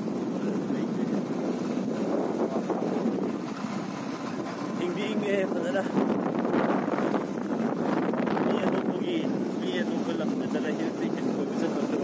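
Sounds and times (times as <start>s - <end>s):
vehicle running noise: 0.0s - 12.0s
wind rushing over microphone: 0.0s - 12.0s.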